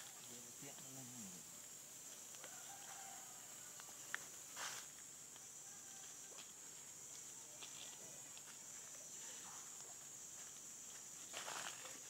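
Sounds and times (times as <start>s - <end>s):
high insect drone: 0.0s - 12.0s.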